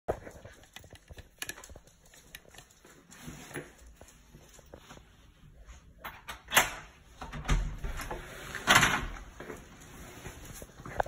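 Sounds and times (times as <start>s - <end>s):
puppy claws clicking on hard floor: 0.1s - 4.7s.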